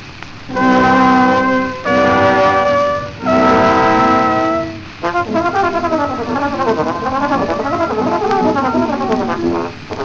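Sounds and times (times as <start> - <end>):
trombone holding a long note: 0.5 - 10.0.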